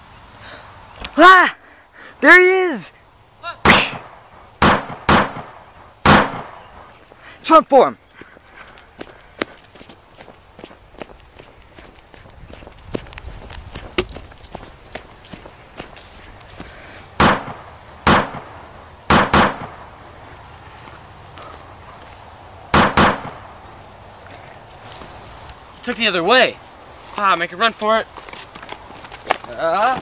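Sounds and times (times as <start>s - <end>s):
sharp gunshot-like bangs: 3.6s - 6.8s, 17.2s - 19.9s, 22.7s - 23.5s
footsteps in tall grass: 8.1s - 17.1s, 19.8s - 22.7s, 23.4s - 30.0s.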